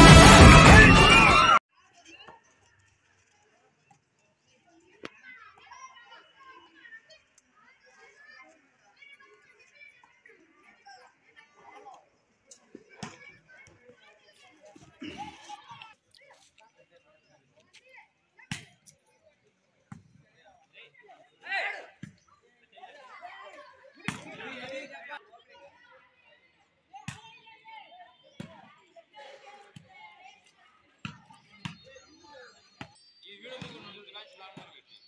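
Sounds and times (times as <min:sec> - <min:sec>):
players' voices and shouts: 0:00.0 - 0:01.6, 0:20.6 - 0:35.0.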